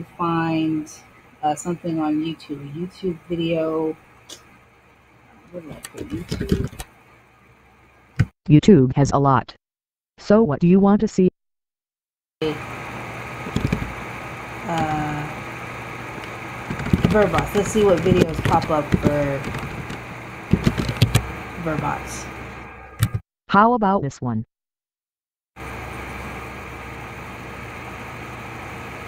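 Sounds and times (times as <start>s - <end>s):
microphone hum and hiss: 5.4s - 6.9s, 12.4s - 22.7s
man saying uh: 5.8s - 6.8s.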